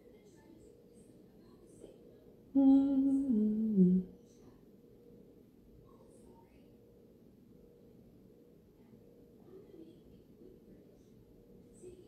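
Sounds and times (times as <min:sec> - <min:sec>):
woman humming mm-hmm: 0:02.6 - 0:04.1.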